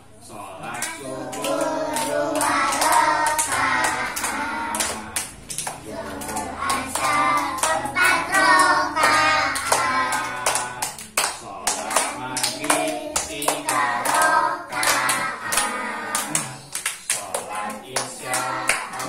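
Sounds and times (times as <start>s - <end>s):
children and man singing: 0.1s - 19.0s.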